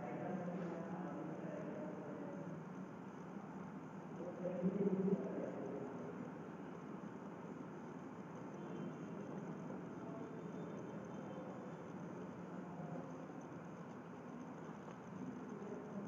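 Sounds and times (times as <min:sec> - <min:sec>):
room tone hiss: 0:00.0 - 0:16.0.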